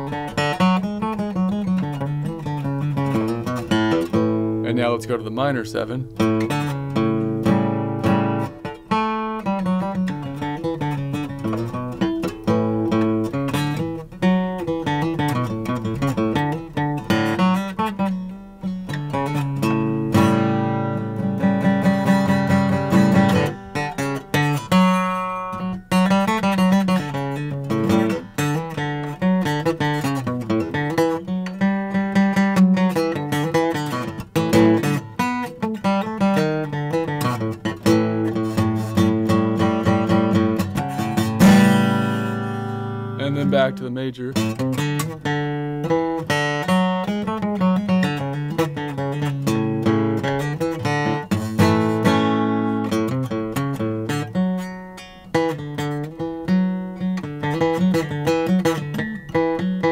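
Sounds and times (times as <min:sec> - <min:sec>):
acoustic guitar picking and strumming: 0:00.0 - 0:59.9.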